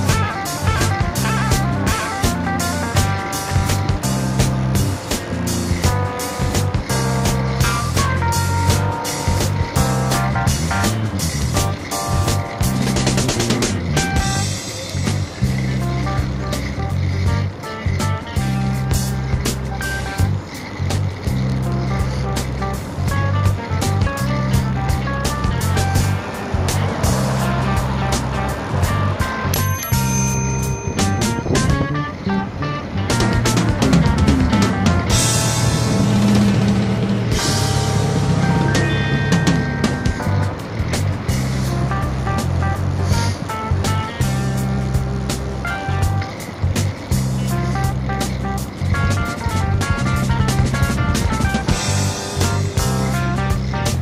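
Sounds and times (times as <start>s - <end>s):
drum beat: 0.0s - 30.1s, 33.1s - 54.0s
bass line: 0.0s - 54.0s
guitar: 0.0s - 54.0s.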